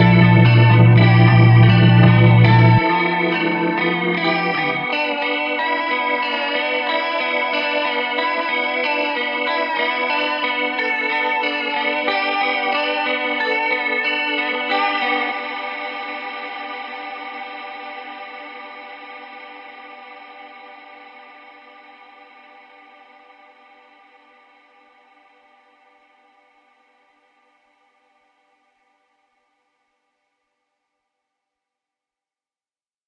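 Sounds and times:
bass: 0:00.0 - 0:04.9
electronic music: 0:00.0 - 0:05.2
sustained guitar-like tones: 0:00.0 - 0:06.8.

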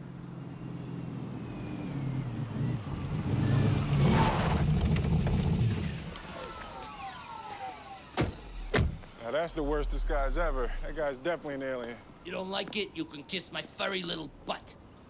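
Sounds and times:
falling whining tones: 0:05.9 - 0:12.2
car engine rumble: 0:08.0 - 0:15.0.

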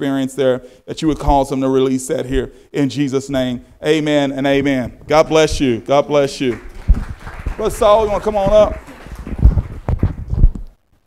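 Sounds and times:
footsteps on wooden stage: 0:06.6 - 0:10.8.

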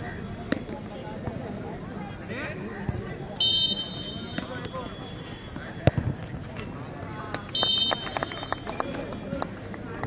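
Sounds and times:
spectators talking and calling out: 0:00.0 - 0:10.0.

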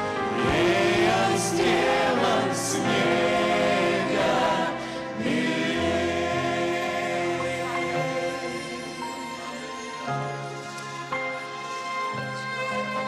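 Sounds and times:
choir singing a hymn: 0:00.0 - 0:10.3.

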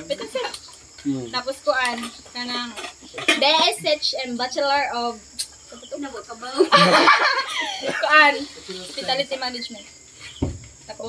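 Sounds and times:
faint voices: 0:00.0 - 0:05.1.

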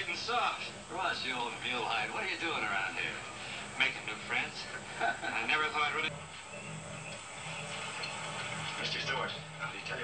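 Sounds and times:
television hiss and hum: 0:00.0 - 0:10.0.

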